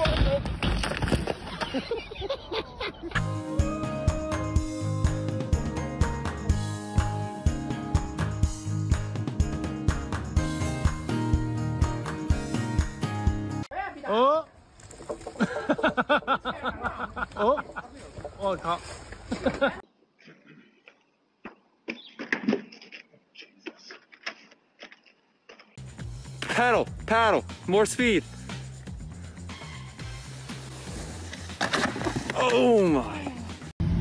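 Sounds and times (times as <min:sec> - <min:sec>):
skis scraping and clattering: 0:14.7 - 0:15.7, 0:17.3 - 0:19.8, 0:30.0 - 0:33.4.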